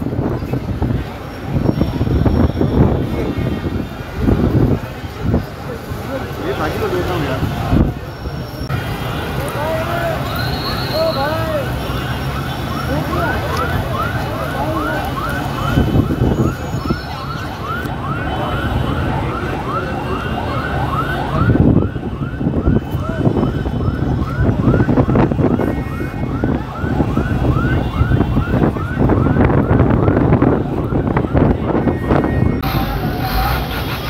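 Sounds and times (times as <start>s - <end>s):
crowd voices: 0.0s - 34.0s
siren on fast yelp: 12.4s - 33.5s.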